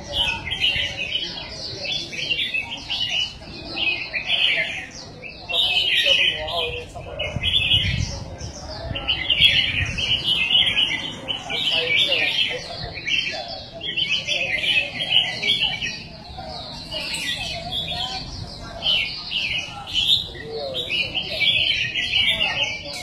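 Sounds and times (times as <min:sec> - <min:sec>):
birds singing warbled phrases: 0:00.0 - 0:23.0.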